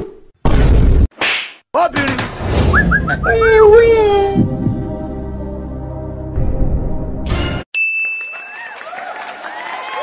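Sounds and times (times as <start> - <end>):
low background music: 3.7 - 7.6.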